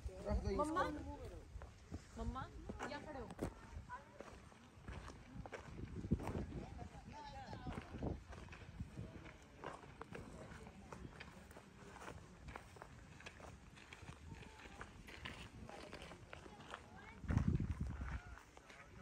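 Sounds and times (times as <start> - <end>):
footsteps crunching on gravel: 1.3 - 19.0.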